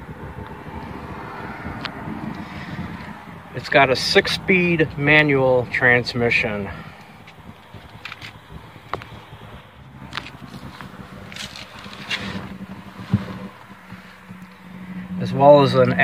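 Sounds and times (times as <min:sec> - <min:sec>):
phone handling clicks and rustles: 0:07.0 - 0:09.2, 0:10.1 - 0:14.6.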